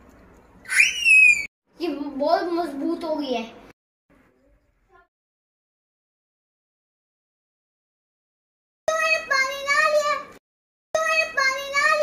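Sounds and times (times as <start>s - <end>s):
high-pitched sweeping whistle: 0.7s - 1.5s.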